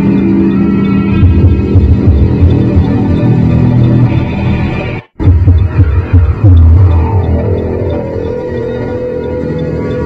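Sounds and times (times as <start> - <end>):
low electronic drone: 0.0 - 10.0
low electronic throbbing pulses: 0.0 - 10.0.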